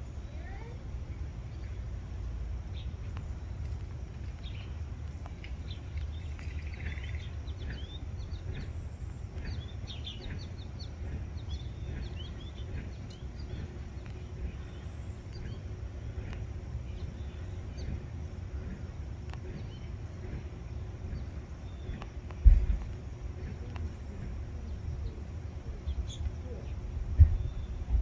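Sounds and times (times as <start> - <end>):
low rumble: 0.0 - 28.0
small birds chirping: 0.0 - 28.0.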